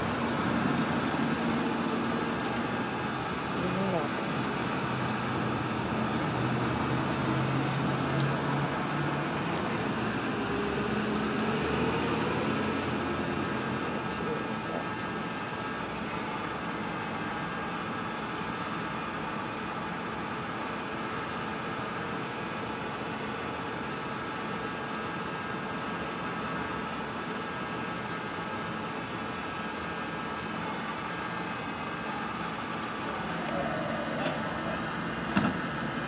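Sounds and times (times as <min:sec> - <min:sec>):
steady mechanical drone: 0:00.0 - 0:36.0.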